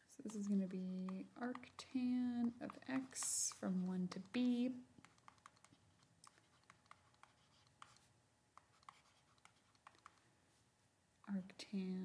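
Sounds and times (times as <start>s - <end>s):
stylus tapping on pen tablet: 0.2s - 10.3s.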